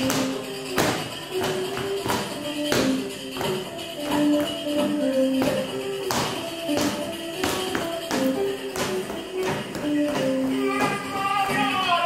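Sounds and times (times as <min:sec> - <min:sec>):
tambourine beating rhythm: 0:00.0 - 0:12.0.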